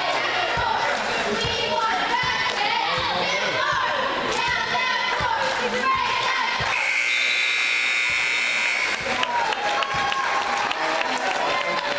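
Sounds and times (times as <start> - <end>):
crowd chatter and cheering: 0.0 - 11.9
scoreboard horn buzzing: 6.7 - 9.4.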